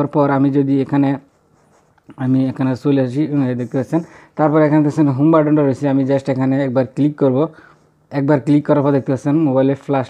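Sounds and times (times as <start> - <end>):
man speaking: 0.0 - 1.3, 2.1 - 10.0.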